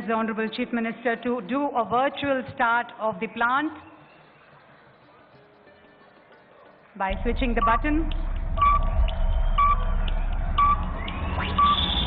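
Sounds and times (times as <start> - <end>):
low electronic drone: 7.1 - 12.0
rising electronic sweep: 8.1 - 12.0
short high beeps: 8.6 - 10.0.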